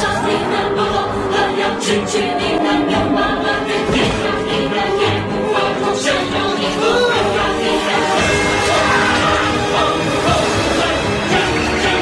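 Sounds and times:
choir singing held notes: 0.0 - 12.0
loud music: 0.0 - 12.0.

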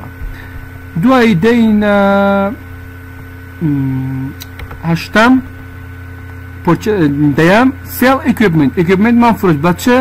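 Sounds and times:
electrical mains hum: 0.0 - 10.0
man saying uhh: 3.6 - 4.4.

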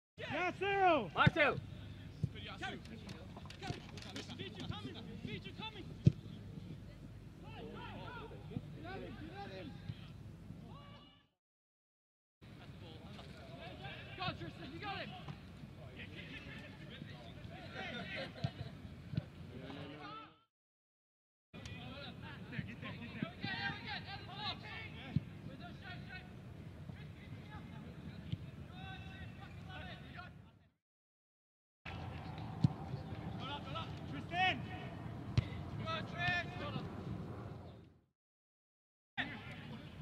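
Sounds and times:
players shouting: 0.2 - 1.6
distant footballers shouting: 0.2 - 2.8, 3.4 - 11.2, 21.6 - 30.5, 31.9 - 37.8.

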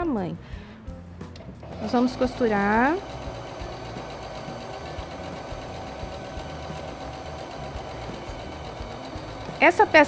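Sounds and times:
sewing machine stitching: 1.6 - 10.0.

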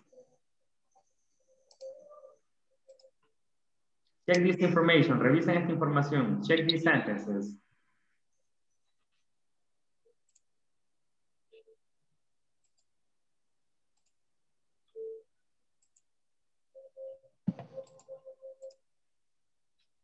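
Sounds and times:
faint clicks and blips: 0.0 - 3.4, 13.9 - 18.9.

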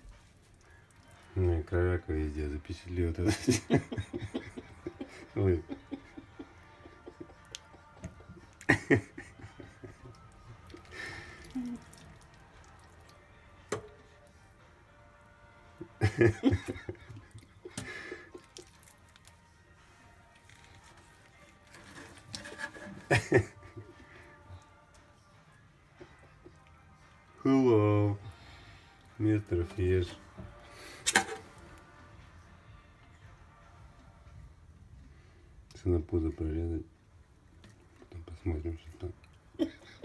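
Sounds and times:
faint background music: 0.0 - 40.0.

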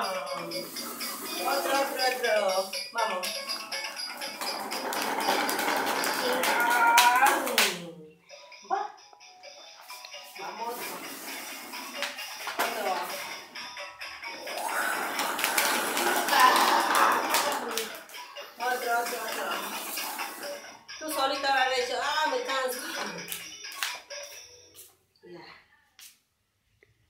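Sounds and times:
toy playing music with singing: 0.0 - 25.0.

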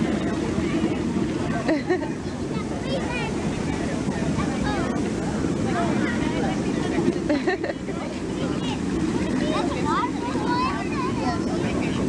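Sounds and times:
hot tub jets bubbling: 0.0 - 12.0
voices: 0.0 - 12.0.

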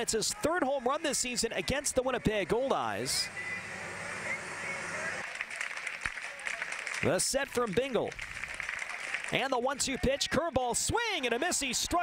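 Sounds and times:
faint voices: 0.0 - 6.8
murmur of crowd: 0.0 - 12.0.

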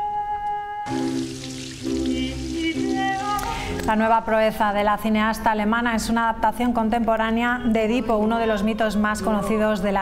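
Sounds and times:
tap water running onto hands: 0.9 - 4.0.

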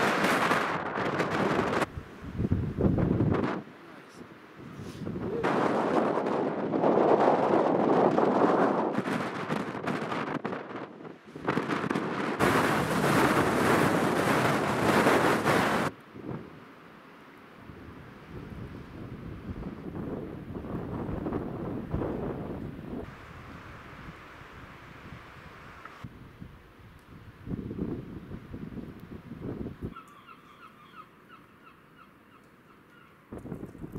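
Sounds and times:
blizzard wind buffeting microphone: 0.0 - 3.8, 4.5 - 16.7, 17.5 - 30.0, 33.3 - 33.9.

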